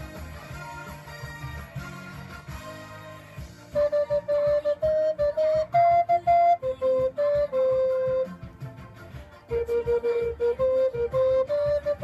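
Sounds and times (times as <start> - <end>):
pop backing track: 0.0 - 12.0
recorder playing melody: 3.6 - 8.6, 9.4 - 12.0.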